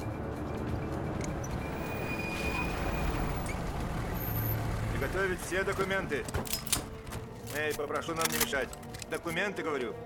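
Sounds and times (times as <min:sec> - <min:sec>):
truck engines rumbling: 0:00.0 - 0:08.1.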